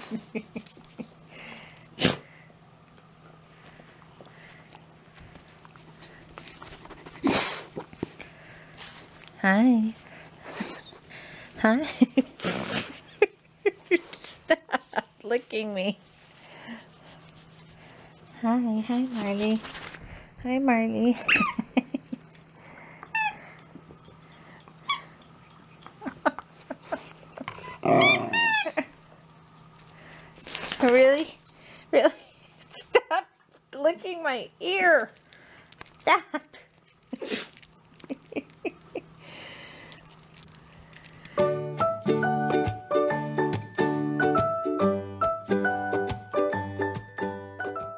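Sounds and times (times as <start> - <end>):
dog sniffing and snuffling: 4.4 - 9.4, 16.2 - 21.6
dog whining: 23.1 - 23.7, 24.8 - 25.9, 27.4 - 28.9.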